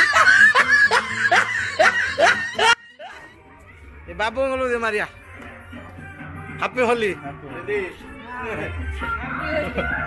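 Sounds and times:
laughter sound effect: 0:00.0 - 0:03.2.

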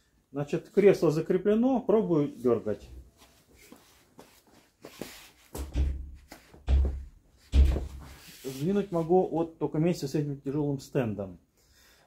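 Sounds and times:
heavy thumps of child car seat: 0:05.6 - 0:08.2.

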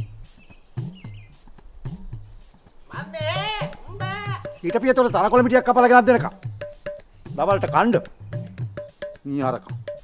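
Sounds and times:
bird chirping: 0:00.0 - 0:10.0
sparse drum beat: 0:00.0 - 0:10.0.

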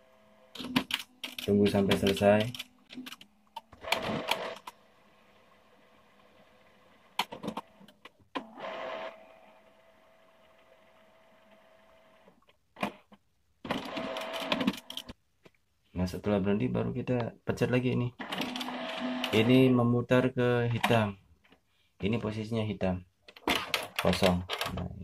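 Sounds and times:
printer motor whirring and clicking: 0:18.2 - 0:19.4.

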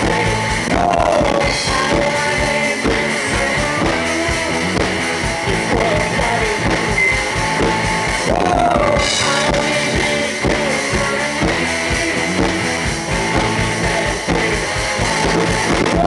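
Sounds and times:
drum kit beat: 0:00.0 - 0:16.0
electric guitars: 0:00.0 - 0:16.0.

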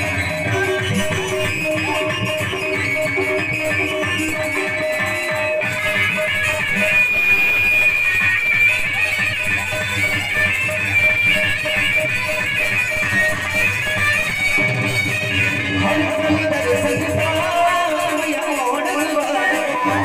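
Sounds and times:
live band music through speakers: 0:00.0 - 0:20.0
electronic keyboard melody: 0:02.3 - 0:08.8.

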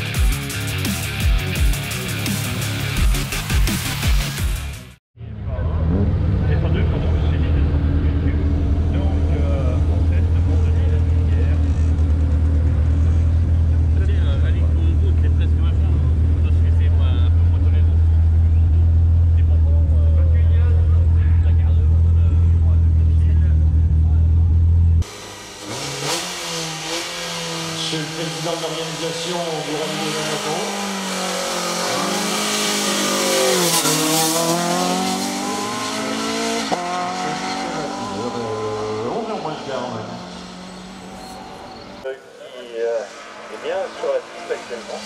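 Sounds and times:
car engine revving while driving: 0:24.3 - 0:42.0.

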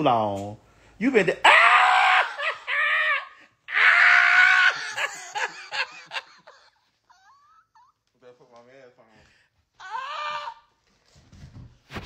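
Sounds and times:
woman shrieking with laughter: 0:01.5 - 0:08.0.

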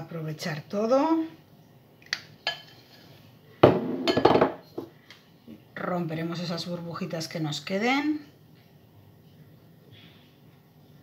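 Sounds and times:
spatula scraping glass bowl: 0:02.5 - 0:03.3.

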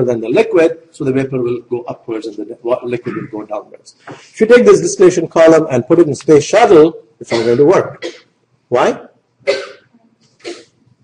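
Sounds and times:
person coughing: 0:03.0 - 0:03.4, 0:07.3 - 0:08.3, 0:09.5 - 0:10.7.

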